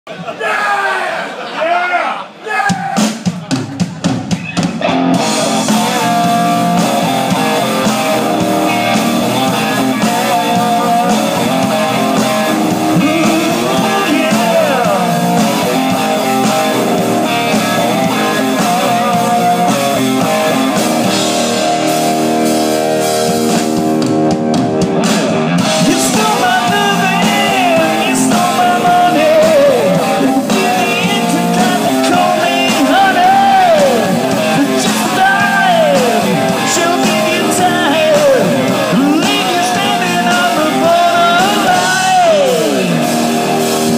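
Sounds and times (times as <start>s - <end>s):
heavy metal band playing live: 2.7s - 43.9s.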